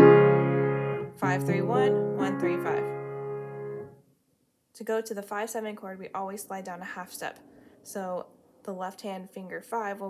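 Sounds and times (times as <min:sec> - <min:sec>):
piano chord: 0:00.0 - 0:04.0.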